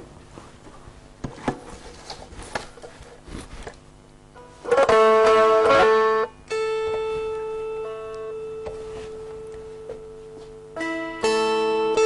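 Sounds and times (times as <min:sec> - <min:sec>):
plucked string note ringing: 0:04.4 - 0:12.0.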